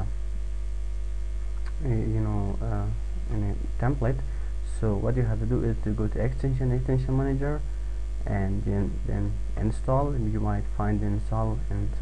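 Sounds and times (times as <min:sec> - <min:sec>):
low electrical mains hum: 0:00.0 - 0:12.0
narrator speaking: 0:01.7 - 0:12.0.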